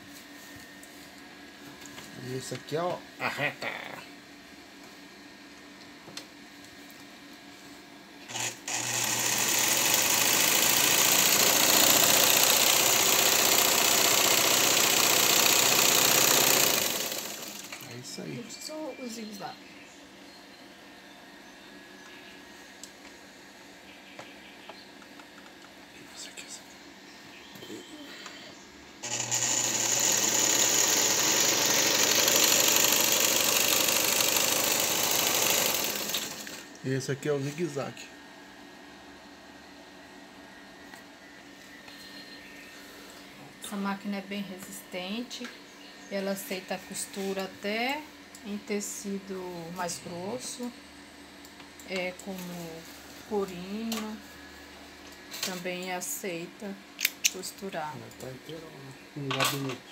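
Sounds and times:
sewing machine stitching: 8.3s - 17.8s, 29.0s - 36.7s.

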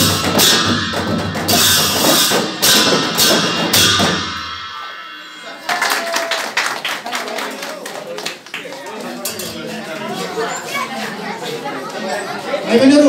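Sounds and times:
cymbal crashes: 0.0s - 5.7s
drums beating: 0.0s - 6.9s
voices chattering: 4.9s - 13.0s.

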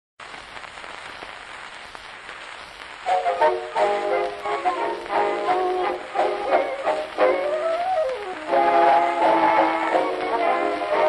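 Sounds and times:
faint record clicks: 0.2s - 11.0s
record surface hiss and crackle: 0.2s - 11.0s.

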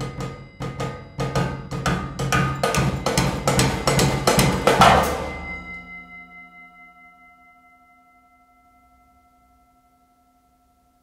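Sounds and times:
cymbal ringing: 0.0s - 11.0s.

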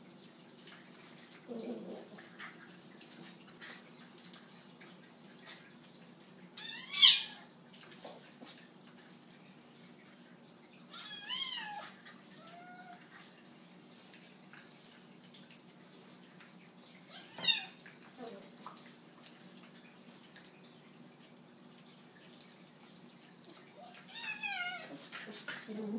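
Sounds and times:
scuffling clicks of animals wrestling: 7.4s - 9.4s, 22.4s - 25.9s.

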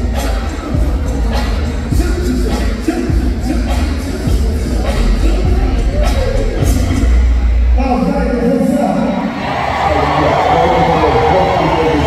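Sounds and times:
live hip-hop music with voice: 0.0s - 12.0s.

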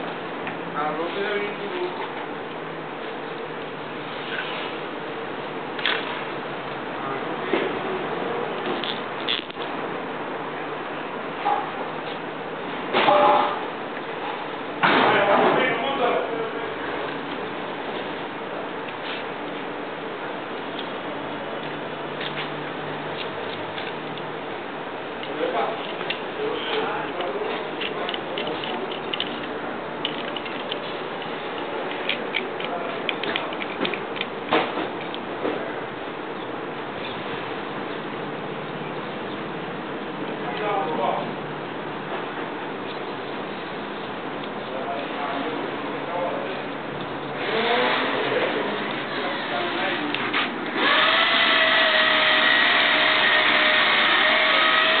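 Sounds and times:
metal and plastic parts clicking: 27.1s - 30.8s, 31.9s - 34.3s
electric motor whine: 50.8s - 55.0s.

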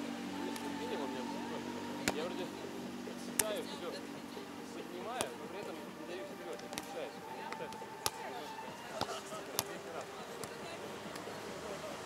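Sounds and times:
volleyball slaps: 2.0s - 2.3s, 3.3s - 3.6s, 5.1s - 5.4s, 6.5s - 11.4s.

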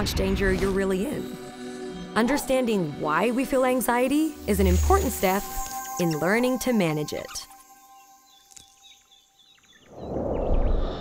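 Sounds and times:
bird chirps: 4.3s - 10.8s.

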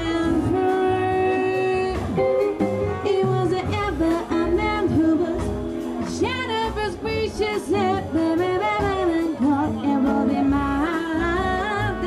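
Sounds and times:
jazz band playing: 0.0s - 12.0s
woman singing into a microphone: 0.0s - 12.0s.

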